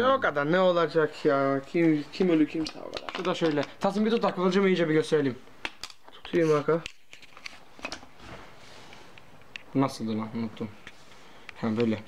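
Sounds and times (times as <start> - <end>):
soft rustle: 7.2 - 9.4.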